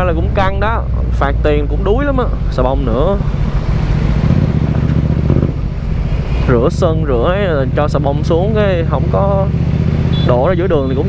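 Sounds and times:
motorcycle engine running steadily: 0.0 - 11.0.

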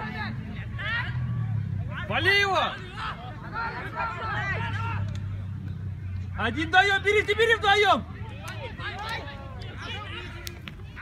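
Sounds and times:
distant voices shouting: 0.0 - 11.0.

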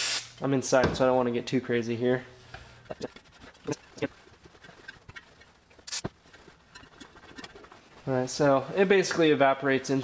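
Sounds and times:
rag rubbing on wheel rim: 2.6 - 8.4.

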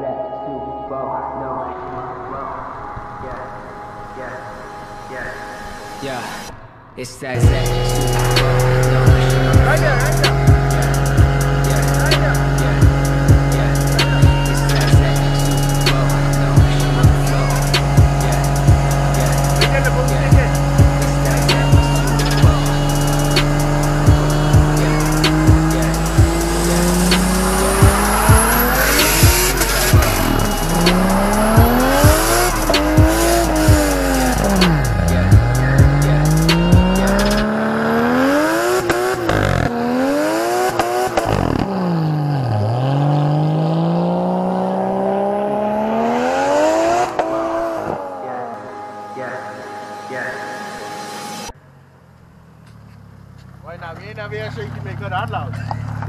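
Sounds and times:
car engine revving: 1.2 - 56.0
background music with steady beat: 7.3 - 39.4, 44.2 - 51.6.

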